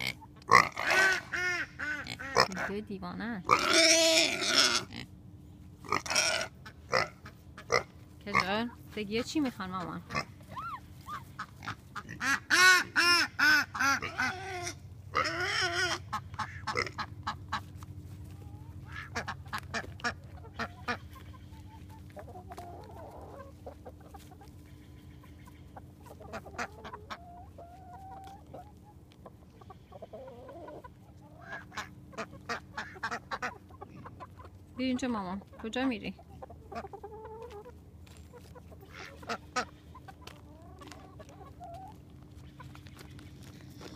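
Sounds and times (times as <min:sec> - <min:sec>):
chickens clucking and squawking: 0:00.0 - 0:43.9.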